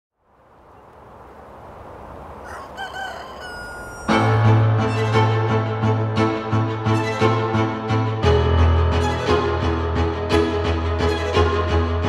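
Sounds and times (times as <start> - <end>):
soft outdoor ambience: 0.1 - 5.1
rooster crowing: 2.4 - 4.6.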